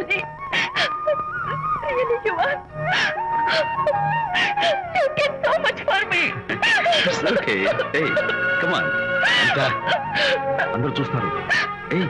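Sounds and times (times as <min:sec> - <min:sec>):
woman crying and sobbing: 0:00.0 - 0:11.9
soft background music: 0:00.0 - 0:12.0.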